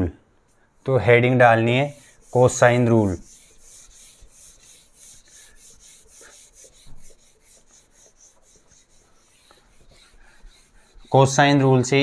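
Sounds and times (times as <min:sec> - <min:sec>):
duster wiping whiteboard: 0:00.8 - 0:12.0.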